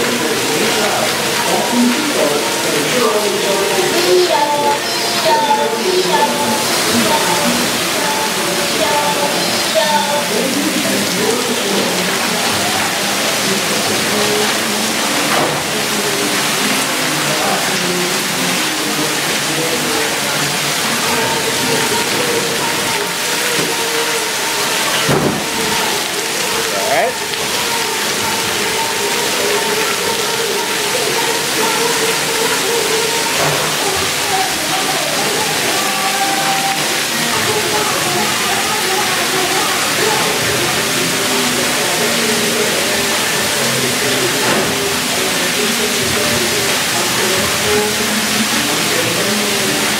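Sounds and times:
people's voices: 0.0s - 49.9s
water jets spraying: 0.0s - 49.9s.

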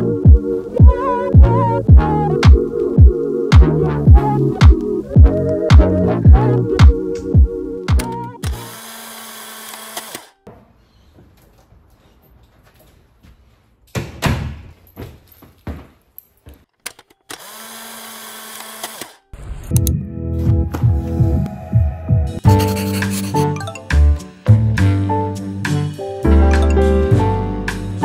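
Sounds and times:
music with steady beat: 0.0s - 8.6s
knocks and clicks: 6.8s - 8.6s.

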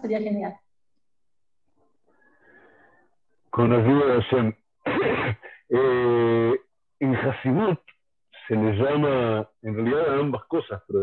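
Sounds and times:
faint muffled sound: 2.1s - 11.0s.

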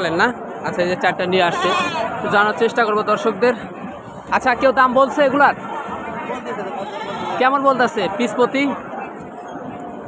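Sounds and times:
men talking: 0.0s - 9.0s.

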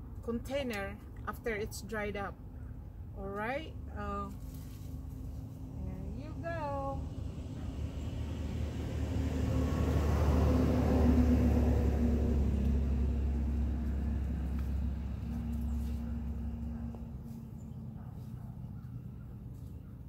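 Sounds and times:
vehicle engine rumble passing: 3.8s - 20.0s.

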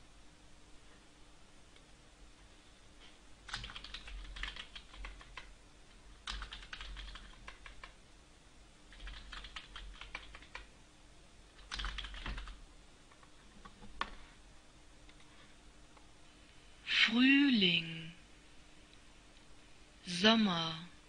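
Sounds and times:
keyboard typing: 3.4s - 5.5s, 6.2s - 8.0s, 8.9s - 10.7s, 11.6s - 14.2s.

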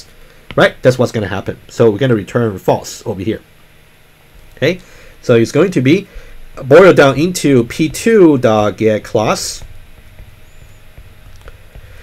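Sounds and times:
low microphone hum: 0.0s - 12.0s.

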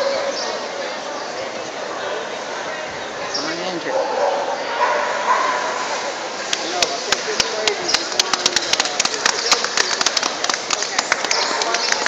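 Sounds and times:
spectator chatter: 0.0s - 12.0s
sharp hand claps: 6.5s - 12.0s.

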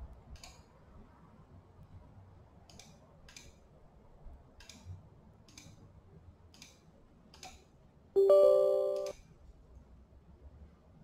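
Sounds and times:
computer system chime: 8.2s - 9.1s
mouse clicks: 8.8s - 9.1s.

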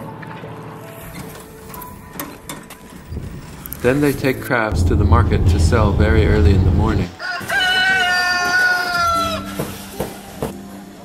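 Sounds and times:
boat engine chattering: 3.8s - 7.1s.

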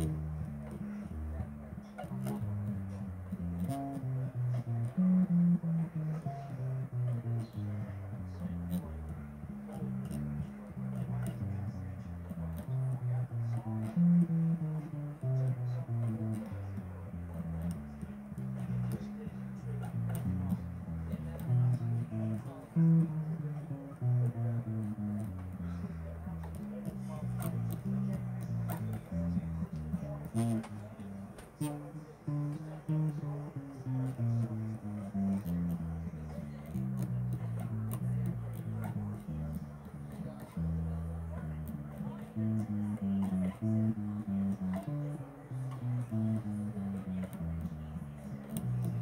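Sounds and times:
electric bass guitar plucked: 0.0s - 49.0s.

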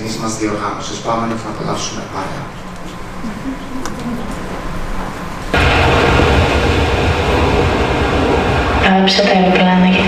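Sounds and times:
aircraft noise over speakers: 2.5s - 10.0s.

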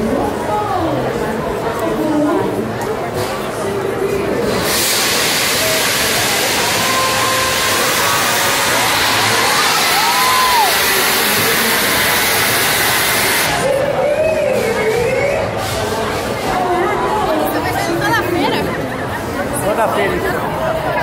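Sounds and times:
crowd chatter: 0.0s - 21.0s
gas jet rushing hiss: 4.5s - 13.6s.

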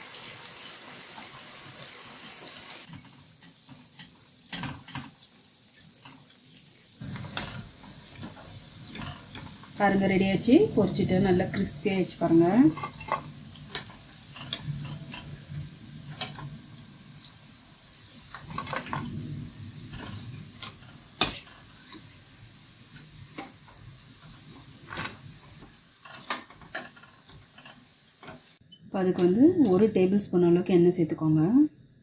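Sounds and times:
hot oil sizzling: 0.0s - 30.2s.

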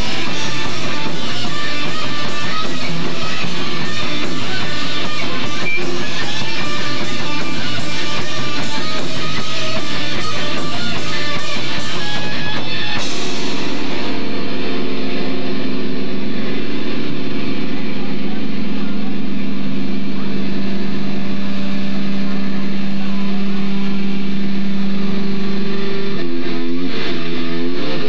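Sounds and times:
distorted guitar droning note: 0.0s - 28.0s
rhythmic guitar riff: 0.0s - 28.0s.

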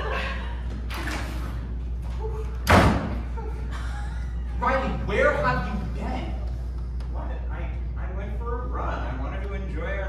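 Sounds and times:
door slamming: 2.6s - 3.3s.

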